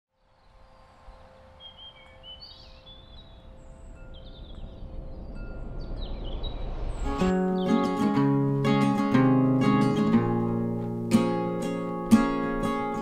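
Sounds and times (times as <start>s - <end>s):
birds chirping: 0.2s - 13.0s.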